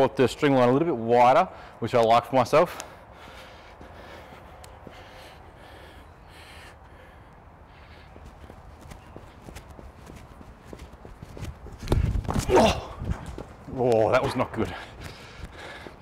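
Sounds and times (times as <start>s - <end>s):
footsteps on artificial turf: 7.8s - 16.0s.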